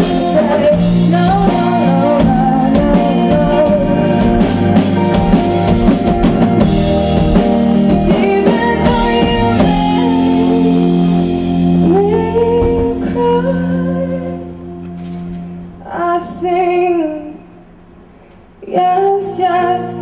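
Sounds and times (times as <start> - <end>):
woman singing: 0.0 - 5.2, 7.8 - 14.8, 15.8 - 17.6, 18.6 - 20.0
drum kit: 0.0 - 16.6
electric bass: 0.0 - 18.0.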